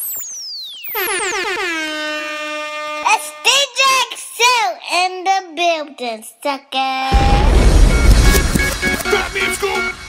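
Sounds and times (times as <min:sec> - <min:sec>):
stuttering air horn blast: 0:01.2 - 0:04.0.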